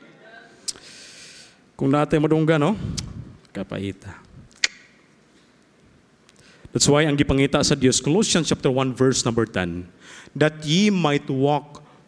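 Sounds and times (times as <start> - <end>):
single sharp click: 4.6 - 4.9.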